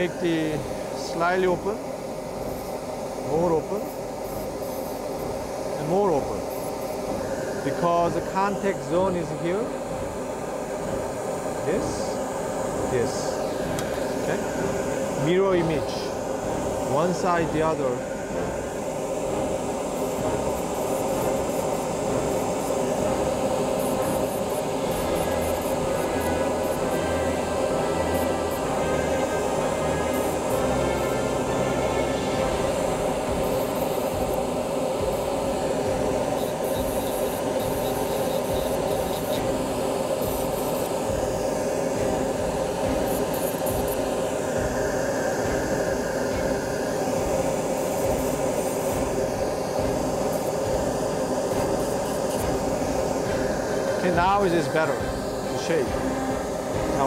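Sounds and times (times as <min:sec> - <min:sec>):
dental handpiece whining: 0:11.8 - 0:57.0.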